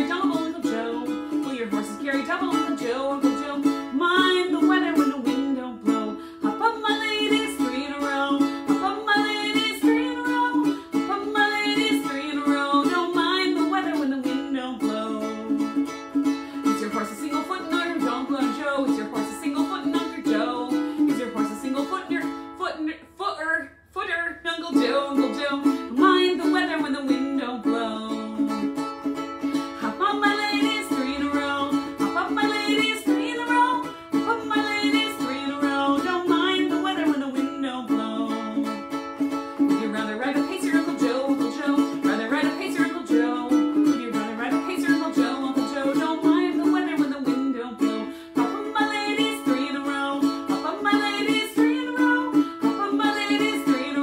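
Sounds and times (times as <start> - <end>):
ukulele strumming: 0.0 - 54.0
woman singing: 0.0 - 54.0.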